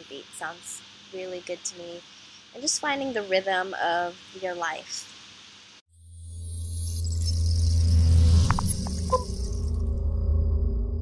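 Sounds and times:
bright shimmering hiss: 6.3s - 10.0s
steady low drone: 7.1s - 11.0s
low rumble: 7.3s - 11.0s.

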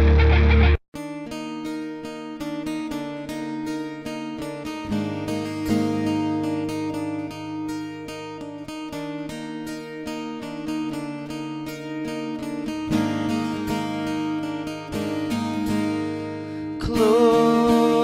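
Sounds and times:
acoustic guitar strumming chords: 0.0s - 18.0s.

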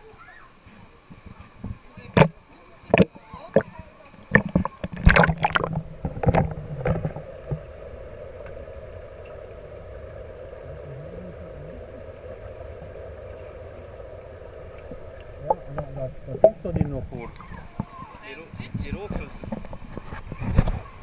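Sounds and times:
muffled underwater hum: 0.7s - 21.0s
water splashing: 1.1s - 21.0s.

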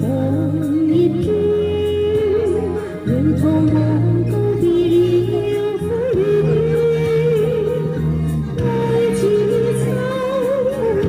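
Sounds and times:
backing track: 0.0s - 11.0s
woman singing into microphone: 0.0s - 11.0s.

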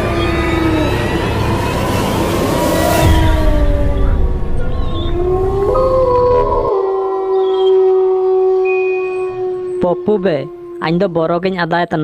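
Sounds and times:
low rumble: 0.0s - 6.7s
eerie sustained tones: 0.0s - 11.5s.

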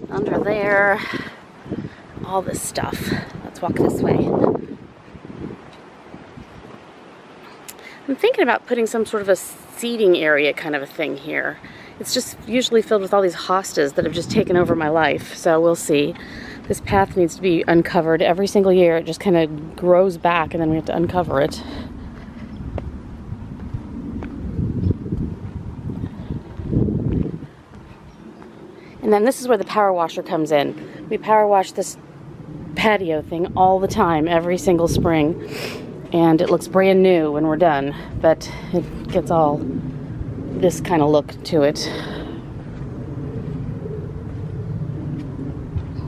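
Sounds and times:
wind buffeting microphone: 0.0s - 46.0s
low outdoor rumble: 7.8s - 46.0s.

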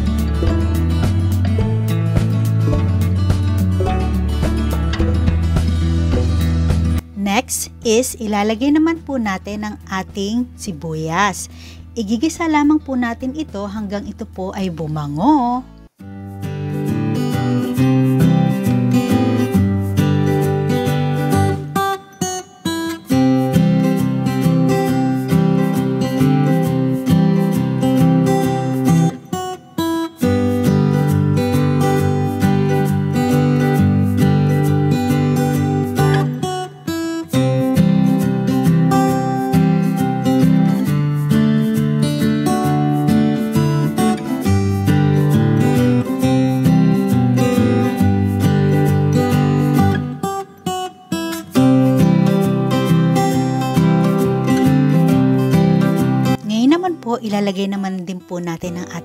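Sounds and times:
strummed acoustic guitar: 0.0s - 7.5s, 15.9s - 59.0s.

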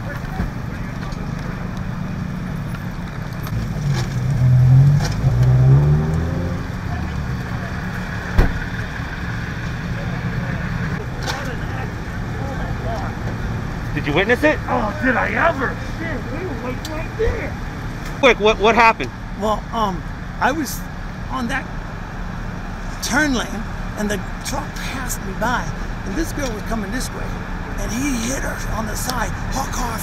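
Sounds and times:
vehicle engines rumbling: 0.0s - 30.0s.

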